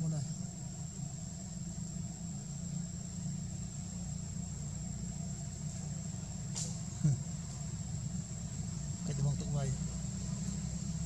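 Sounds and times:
high-pitched insect drone: 0:00.0 - 0:11.0.

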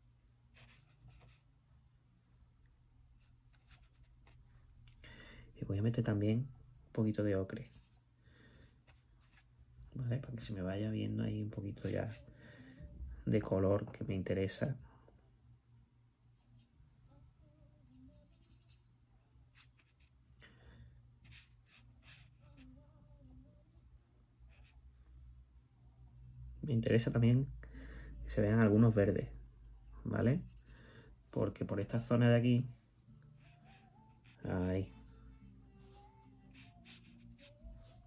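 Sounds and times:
low steady hum: 0:00.0 - 0:38.0
paintbrush swishing on paper: 0:00.5 - 0:01.5, 0:21.2 - 0:22.7, 0:35.8 - 0:38.0.

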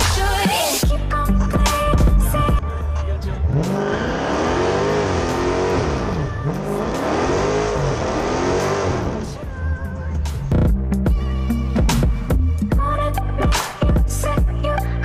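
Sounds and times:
background music: 0:00.0 - 0:15.0
car engine revving: 0:01.4 - 0:11.0.

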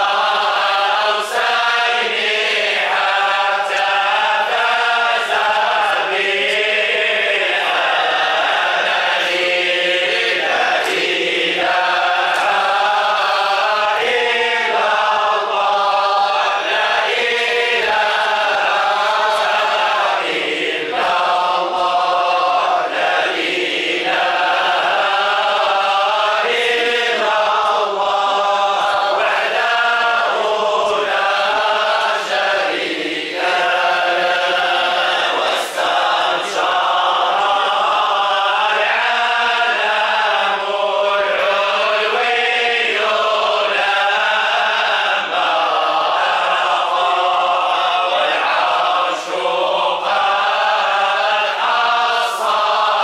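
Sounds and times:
men chanting in unison: 0:00.0 - 0:53.0.

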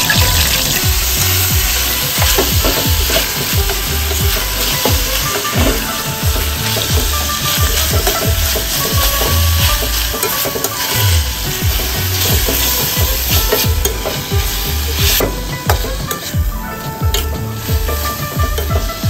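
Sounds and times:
metal spatula scraping a pan: 0:00.0 - 0:19.0
vegetables sizzling in a pan: 0:00.0 - 0:19.0.

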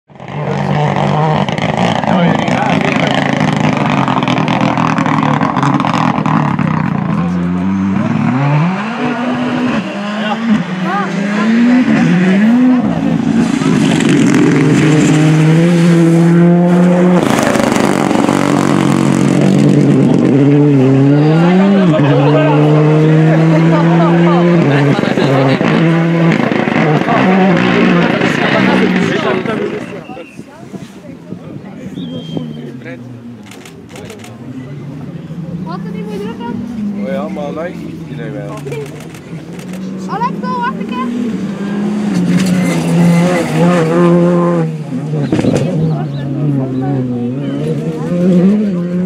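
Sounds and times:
rally car engines revving: 0:00.1 - 0:49.0.

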